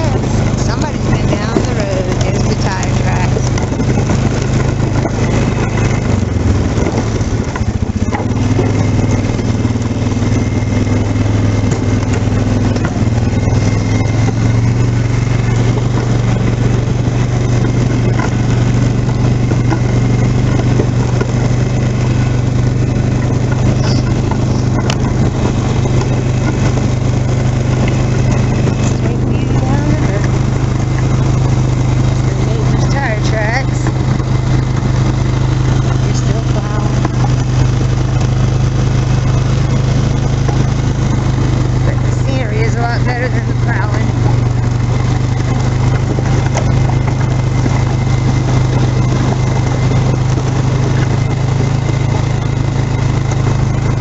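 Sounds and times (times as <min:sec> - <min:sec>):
quad bike engine running: 0:00.0 - 0:54.0.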